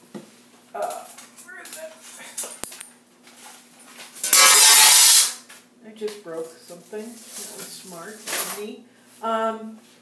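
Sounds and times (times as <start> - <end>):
harsh crash of breaking: 4.3 - 5.3.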